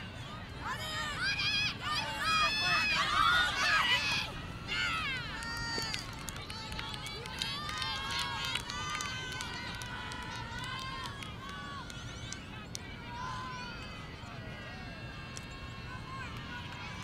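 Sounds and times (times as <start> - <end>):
women shouting and calling: 0.6 - 6.6.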